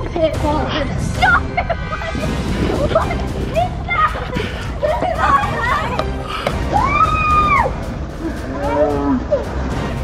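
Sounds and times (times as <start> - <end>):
music with steady beat: 0.0 - 10.0
girl screaming: 6.7 - 7.7.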